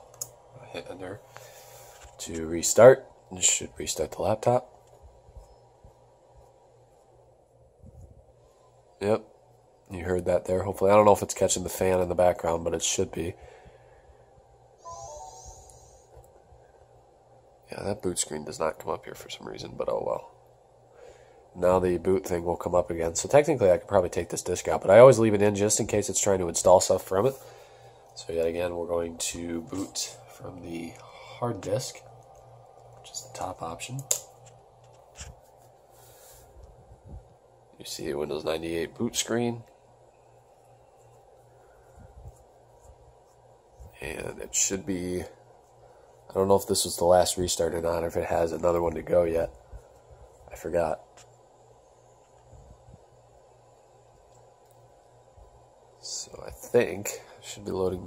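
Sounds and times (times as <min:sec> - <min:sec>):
faint high hiss: 0:00.0 - 0:58.0
descending electronic chime: 0:14.8 - 0:15.7.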